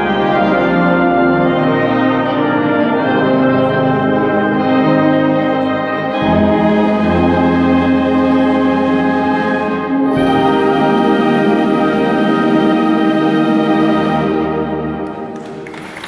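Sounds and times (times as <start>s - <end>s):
wind band playing swing: 0.0s - 15.4s.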